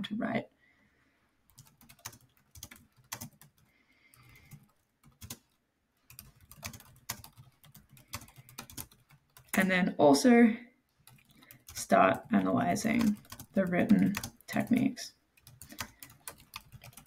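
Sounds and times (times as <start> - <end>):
computer keyboard typing: 1.5 - 9.7, 11.0 - 17.0.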